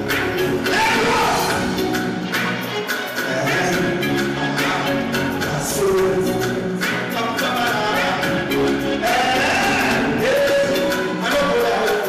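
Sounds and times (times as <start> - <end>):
live music: 0.0 - 12.0.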